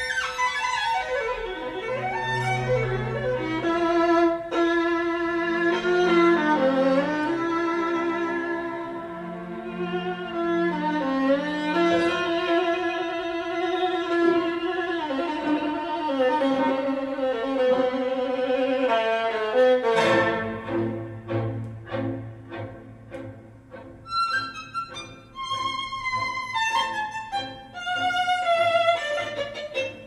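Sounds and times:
violin music over loudspeakers: 0.0 - 30.0.

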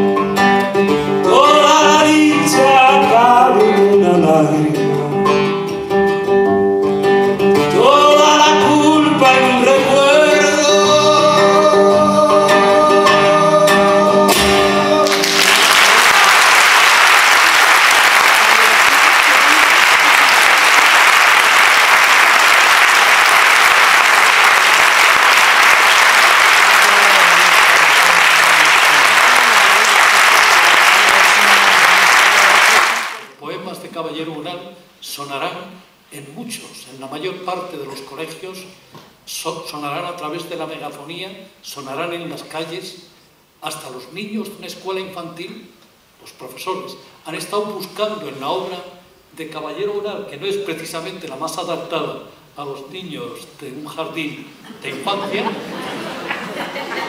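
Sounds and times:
classical guitar: 0.0 - 15.4
man singing: 1.2 - 5.6, 7.6 - 15.7
audience applauding: 15.0 - 33.3, 55.4 - 57.0.

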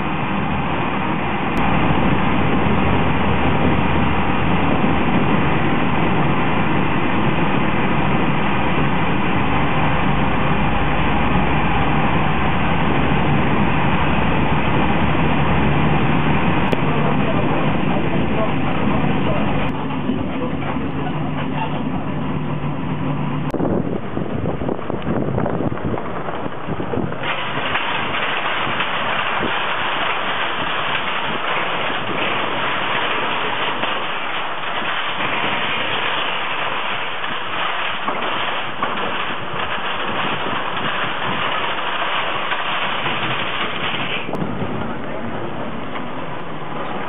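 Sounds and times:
engine hum: 0.0 - 47.0
vehicle rushing noise: 21.9 - 47.0
wind on microphone: 23.4 - 47.0.

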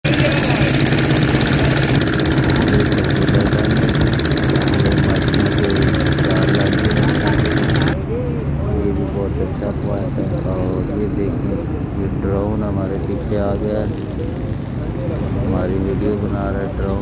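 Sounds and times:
boat engine droning: 0.0 - 8.1.

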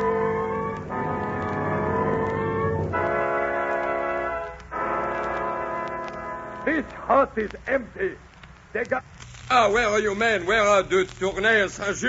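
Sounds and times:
brass chords: 0.0 - 7.4.

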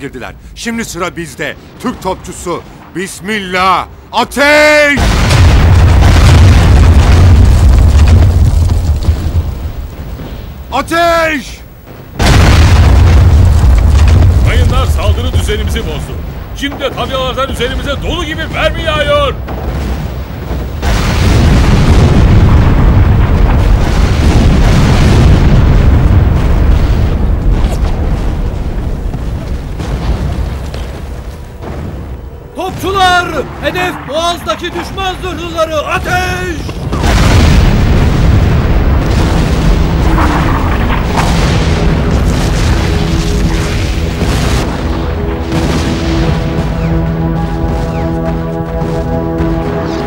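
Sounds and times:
artillery shell explosions: 4.8 - 48.3
deep rumbling cannon boom: 5.0 - 10.7, 11.8 - 49.9
music: 42.8 - 50.0.

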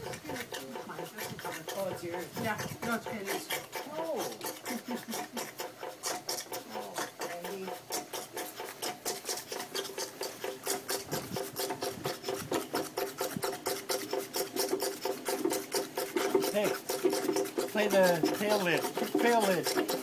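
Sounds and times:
vacuum pump ticking: 0.0 - 20.0.

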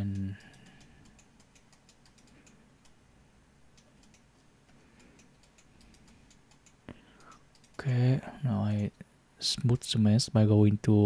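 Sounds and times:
computer mouse click: 0.0 - 3.0, 3.8 - 7.8.

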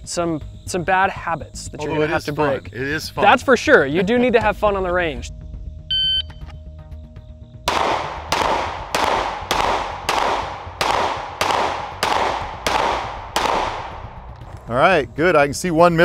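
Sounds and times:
shot timer beep: 5.9 - 6.3
pistol shots echoing: 7.7 - 14.3.

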